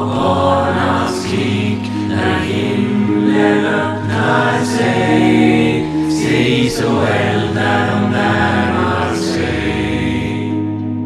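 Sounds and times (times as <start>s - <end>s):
choir singing long chords: 0.0s - 11.0s.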